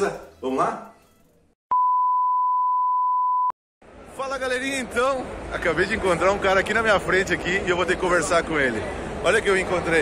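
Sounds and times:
high test-tone beep: 1.7 - 3.5.

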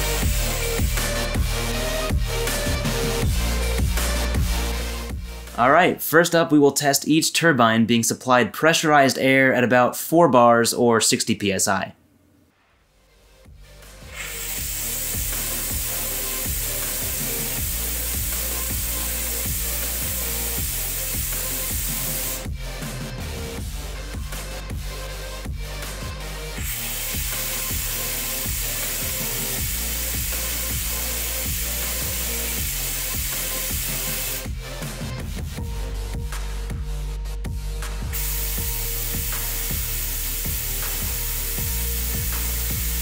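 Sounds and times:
compressed air hissing: 0.0 - 1.8, 13.9 - 22.5, 26.6 - 34.5, 38.1 - 43.0
electronic music with steady beat: 0.0 - 6.0, 13.4 - 43.0.

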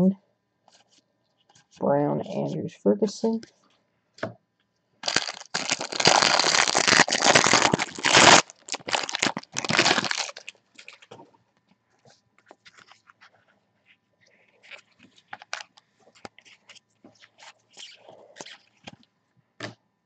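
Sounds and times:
cellophane crinkling and tearing: 5.0 - 11.2, 14.5 - 19.0.

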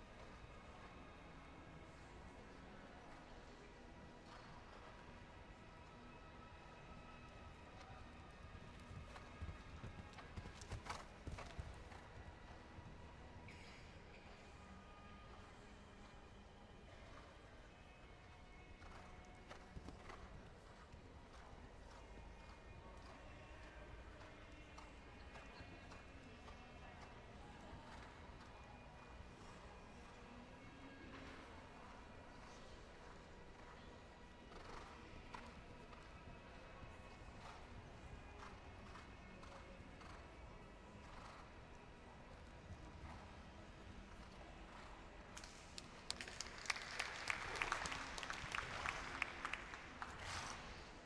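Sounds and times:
horse hoofbeats on sand: 8.6 - 12.2
small crowd applauding: 45.4 - 50.7.

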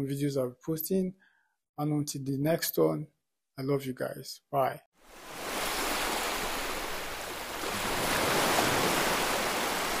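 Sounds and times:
small waves washing on beach: 5.0 - 10.0.

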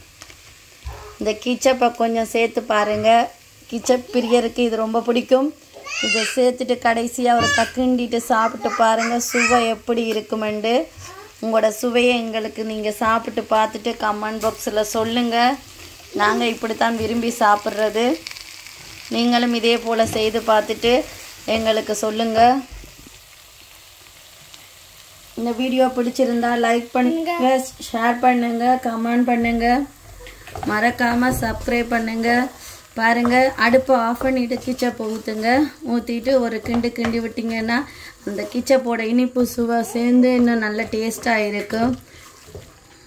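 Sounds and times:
faint frying sizzle: 0.0 - 43.0.

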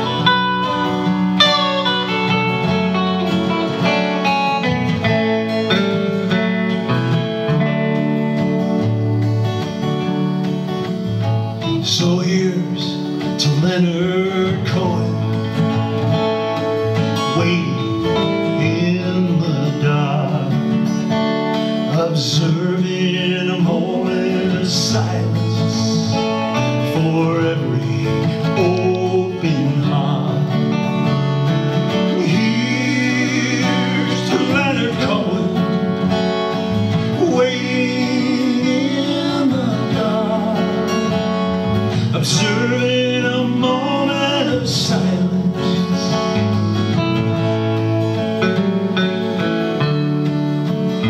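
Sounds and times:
electric guitar lead with bends: 0.0 - 51.0
strummed acoustic guitar: 0.0 - 51.0.

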